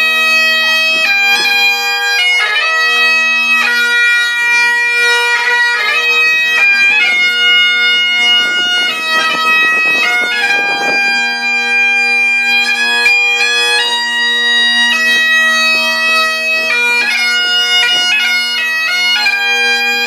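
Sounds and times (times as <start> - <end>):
bagpipe drones: 0.0 - 20.0
bagpipe melody: 0.0 - 20.0.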